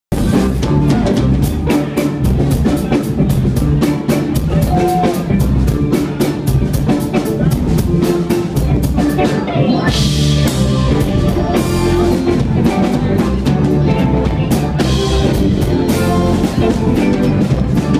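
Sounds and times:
drum kit steady beat: 0:00.1 - 0:17.9
electric bass: 0:00.1 - 0:17.9
electric guitar: 0:00.1 - 0:17.9
keyboard: 0:00.1 - 0:17.9.

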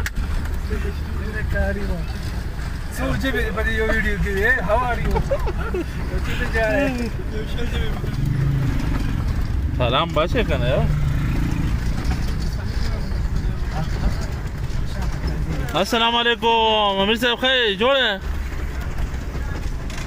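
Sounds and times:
road noise: 0:00.0 - 0:20.0
vehicle engine rumble: 0:00.0 - 0:20.0
people talking: 0:00.6 - 0:08.2, 0:09.8 - 0:11.0, 0:12.2 - 0:18.2.

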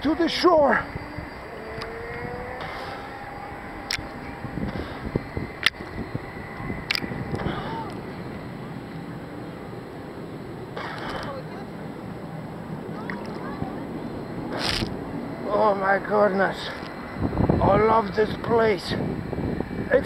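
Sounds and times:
sharp clicks: 0:03.8 - 0:04.1, 0:05.6 - 0:05.8, 0:06.6 - 0:08.0.

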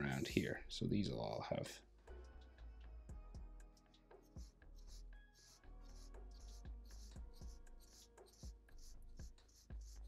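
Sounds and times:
quiet background music: 0:00.0 - 0:10.0
marker scratching on paper: 0:03.8 - 0:10.0.

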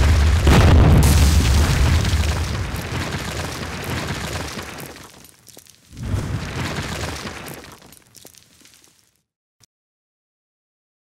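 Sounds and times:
deep rumbling boom: 0:00.0 - 0:03.0
crashing rubble: 0:00.0 - 0:09.1.

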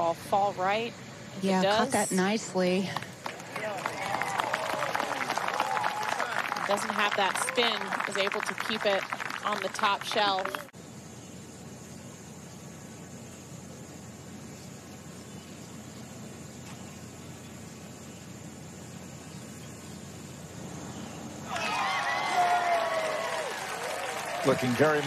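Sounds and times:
quiet outdoor ambience: 0:00.0 - 0:25.0
spectators cheering and clapping: 0:03.0 - 0:10.7, 0:21.5 - 0:25.0.

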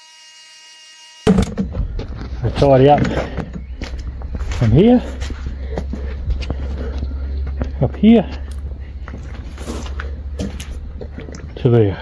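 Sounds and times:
low steady rumble: 0:01.3 - 0:11.8
footsteps: 0:01.3 - 0:12.0.

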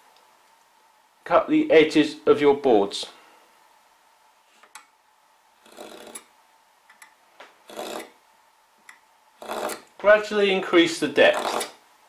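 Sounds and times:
knife scratching wood: 0:05.6 - 0:06.3, 0:07.6 - 0:08.2, 0:09.4 - 0:10.0, 0:11.2 - 0:11.8.

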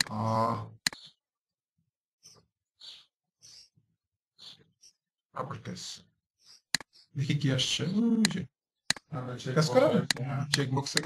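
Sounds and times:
faint short breaths: 0:02.2 - 0:03.8, 0:04.4 - 0:05.0.

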